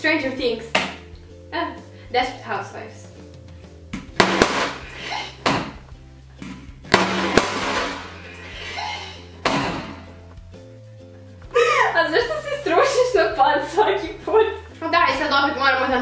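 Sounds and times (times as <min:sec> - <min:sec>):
background music: 0:00.0 - 0:16.0
balloon popping: 0:04.0 - 0:05.8, 0:06.4 - 0:08.3
girls shrieking and laughing: 0:08.7 - 0:09.3.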